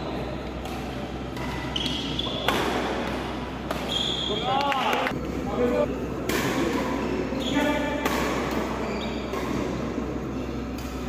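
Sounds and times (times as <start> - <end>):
racket striking shuttlecock: 0.6 - 4.1, 6.2 - 7.0, 7.6 - 9.8
shoes squeaking on court floor: 1.3 - 2.6, 3.8 - 4.7, 6.8 - 7.8, 8.6 - 9.7.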